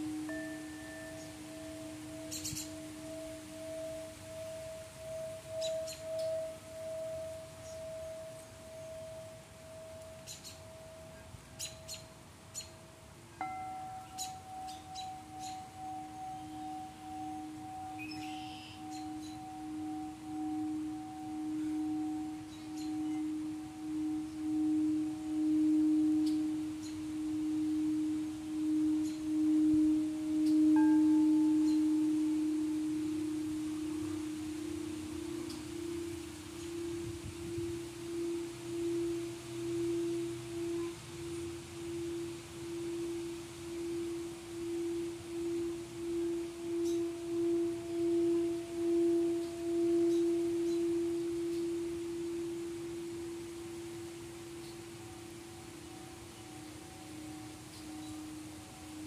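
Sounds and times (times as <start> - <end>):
singing bowl tone: 0.0 - 59.0.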